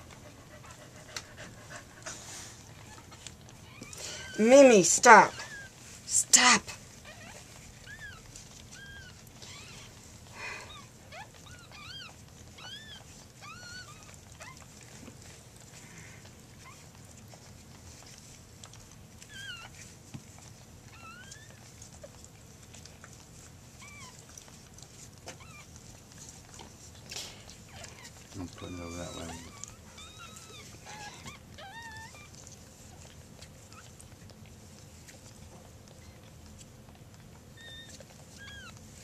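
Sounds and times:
faint rustling of handling: 0:00.0 - 0:39.0
puppies squeaking: 0:02.6 - 0:39.0.

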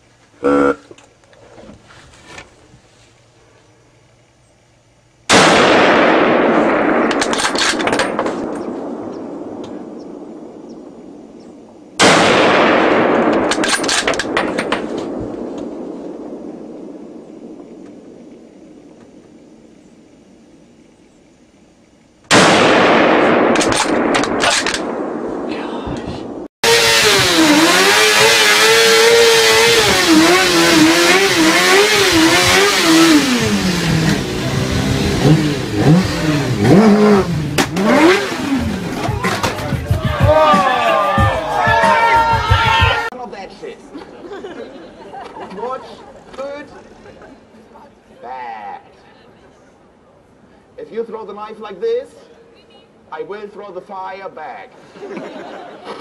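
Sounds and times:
gunshots echoing: 0:05.3 - 0:19.0, 0:22.3 - 0:28.0
motorcycle engine revving: 0:26.6 - 0:39.8.

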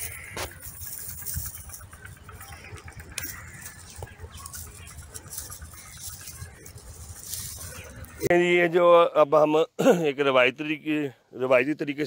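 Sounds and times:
faint bird calls: 0:00.0 - 0:08.3
low outdoor rumble: 0:00.0 - 0:09.8.

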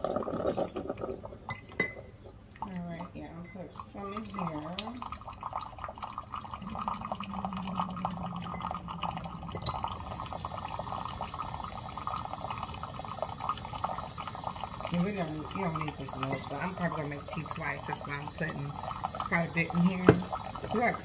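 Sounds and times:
low steady hum: 0:00.0 - 0:21.0
water pouring into a mug: 0:00.0 - 0:21.0.

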